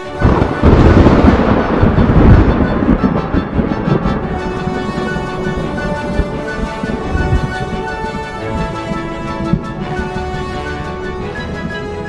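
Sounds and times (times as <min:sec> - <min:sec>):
thunder rumbling: 0:00.0 - 0:12.0.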